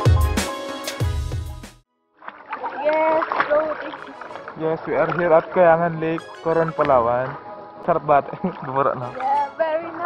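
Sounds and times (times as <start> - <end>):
water splashing: 2.2 - 10.0.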